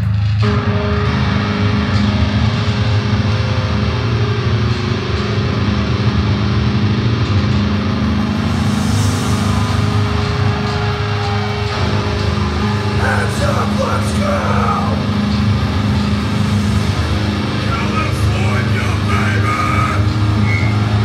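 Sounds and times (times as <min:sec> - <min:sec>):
distorted electric guitar and bass: 0:00.0 - 0:21.0.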